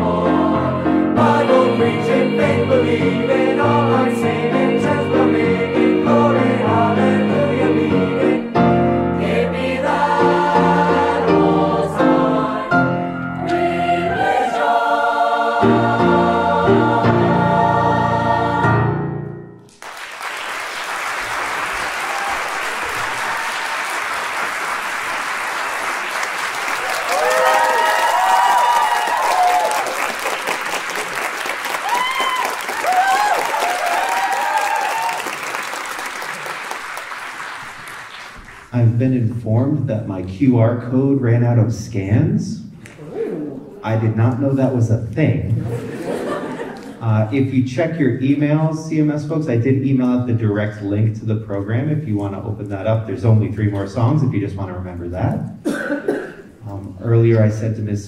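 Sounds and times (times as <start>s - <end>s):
choir singing with accompaniment: 0.0s - 19.4s
audience applauding: 19.7s - 38.7s
cheering shouts: 22.0s - 23.7s, 26.8s - 30.2s, 31.8s - 35.4s.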